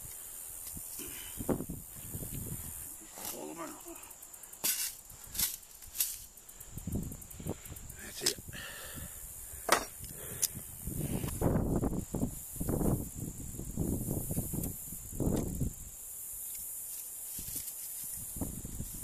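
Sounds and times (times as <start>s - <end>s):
wire mesh scraping through grass: 4.6s - 6.3s, 16.9s - 19.0s.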